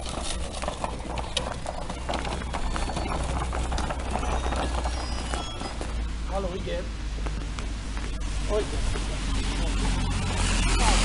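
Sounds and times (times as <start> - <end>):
toy wheels crunching through snow: 0.0 - 6.8
low rumble: 0.0 - 11.0.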